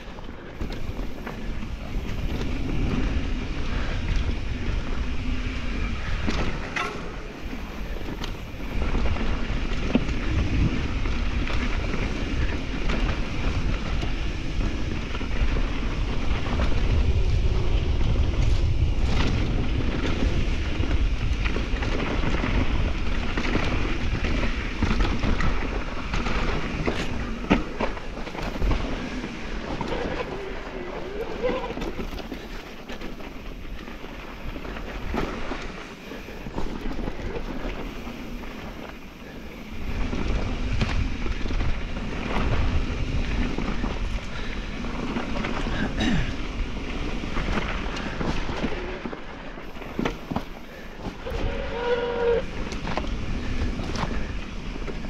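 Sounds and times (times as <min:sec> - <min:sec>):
bike rattling: 0:00.0 - 0:55.0
bike tyre noise: 0:00.0 - 0:55.0
wind buffeting microphone: 0:00.0 - 0:55.0.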